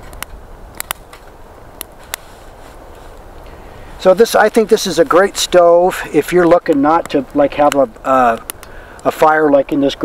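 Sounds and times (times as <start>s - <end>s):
sharp pops of fire: 0.0s - 3.6s, 4.4s - 9.8s
twig fire crackling: 0.0s - 10.0s.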